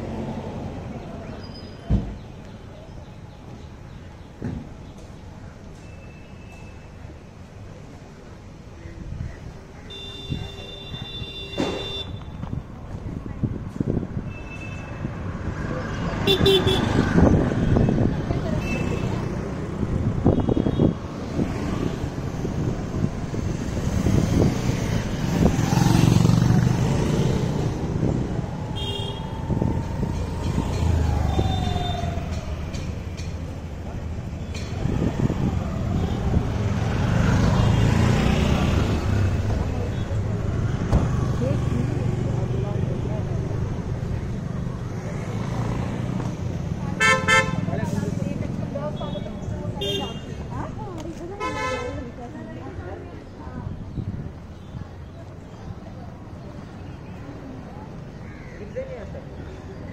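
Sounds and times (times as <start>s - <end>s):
voices of passers-by: 0.0s - 59.9s
vehicle engines running: 11.6s - 51.4s.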